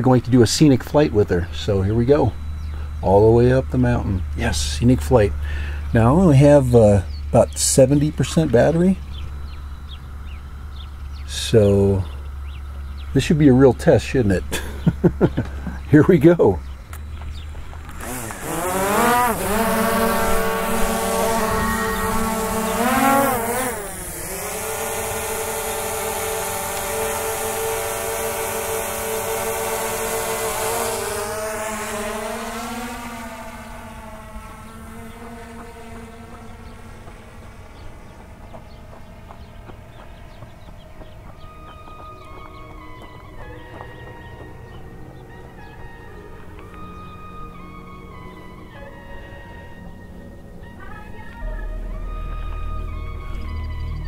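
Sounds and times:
drone propellers humming: 0.0s - 54.0s
quiet background music: 37.4s - 54.0s.

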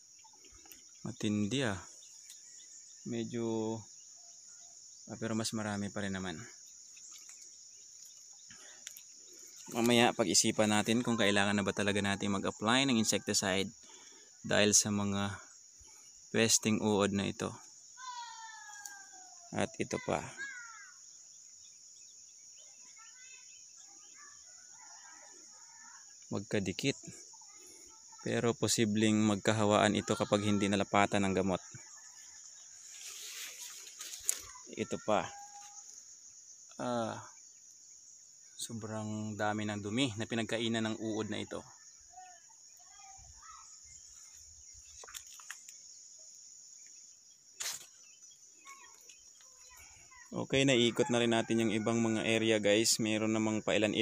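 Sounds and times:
distant bird calls: 0.0s - 54.0s
high-pitched insect chorus: 0.0s - 54.0s.

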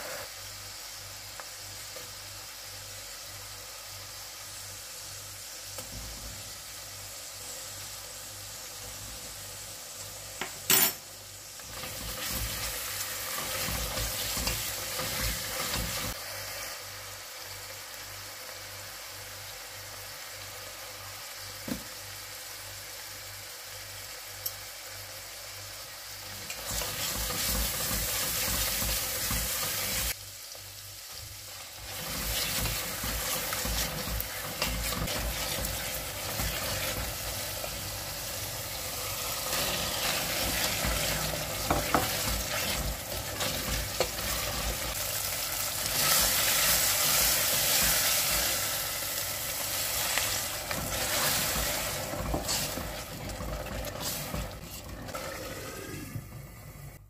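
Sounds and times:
onion paste sizzling in oil: 0.0s - 57.0s
spoon stirring and scraping pot: 31.9s - 37.4s, 39.5s - 44.9s, 50.1s - 55.4s.

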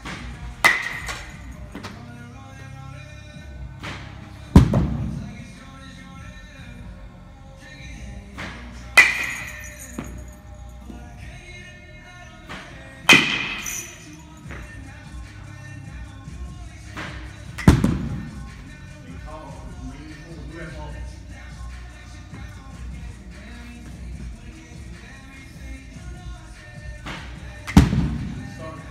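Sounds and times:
baseball bat cracking a ball: 0.0s - 2.1s, 3.8s - 5.3s, 8.3s - 10.3s, 12.4s - 16.2s, 16.8s - 18.8s, 27.0s - 28.9s
background music: 0.0s - 28.9s.

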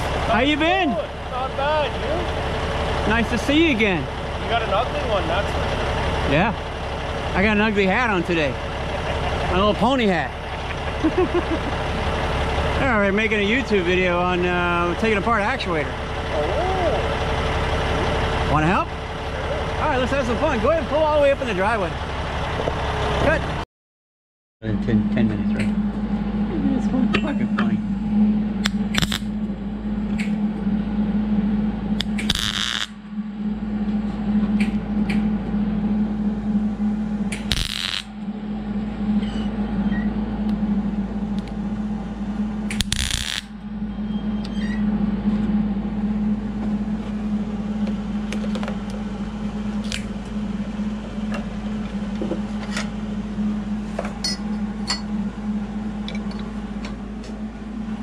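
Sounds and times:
tool humming: 24.8s - 58.0s.

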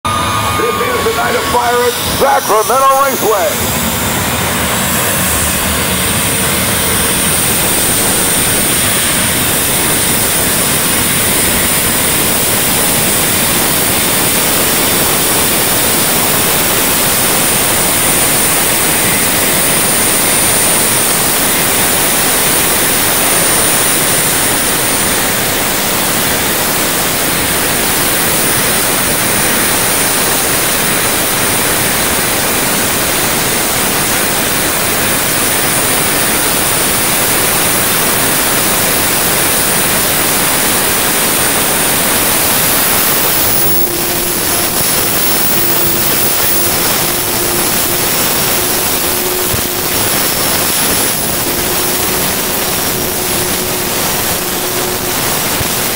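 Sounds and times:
turbine engine rushing: 0.0s - 55.9s
thin high whine: 0.1s - 55.9s.

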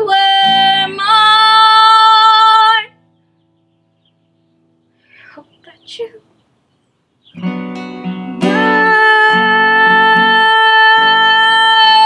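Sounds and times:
acoustic guitar chord ringing: 7.3s - 12.0s.

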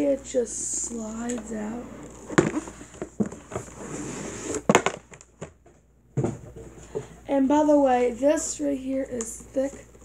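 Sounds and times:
cardboard box scraping rustle: 1.6s - 4.7s.

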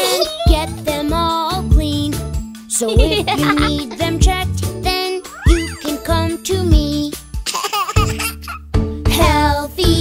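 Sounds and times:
child singing: 0.0s - 7.2s, 9.1s - 10.0s
upbeat backing music: 0.0s - 10.0s.

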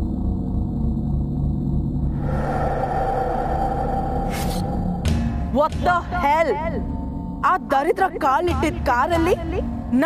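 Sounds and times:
low rumbling drone: 0.0s - 7.8s.

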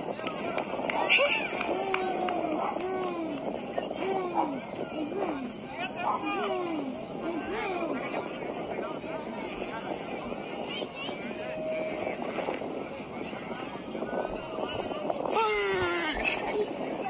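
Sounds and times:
steady rushing background noise: 0.0s - 17.0s
voices of players: 0.0s - 17.0s.

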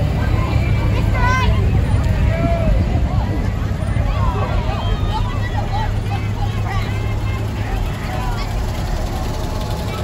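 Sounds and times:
crowd voices: 0.0s - 10.0s
vehicle engine rumble: 0.0s - 10.0s.

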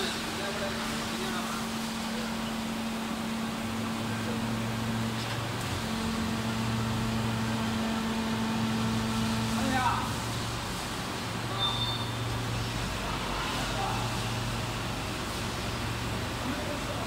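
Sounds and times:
machine hum: 0.0s - 11.6s.

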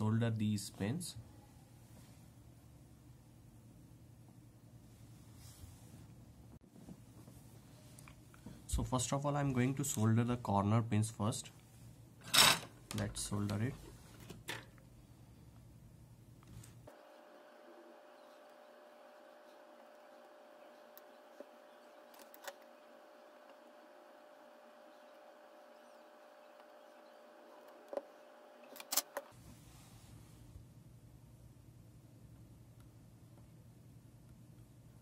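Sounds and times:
faint steady hum: 0.0s - 35.0s.

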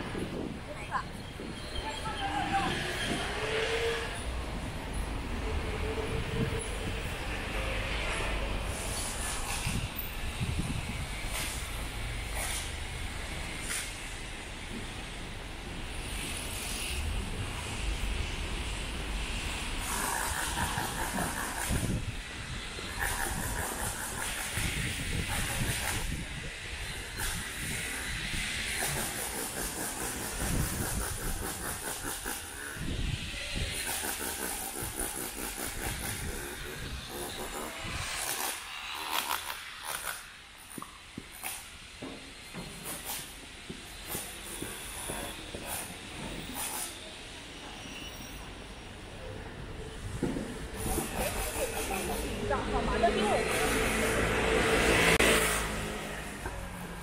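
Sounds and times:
traffic passing: 0.0s - 47.8s, 48.4s - 57.0s.

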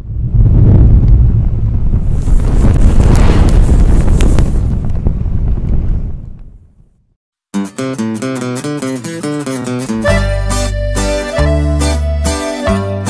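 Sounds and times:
deep rumbling rush: 0.0s - 7.1s
sharp crackles: 0.5s - 7.1s.

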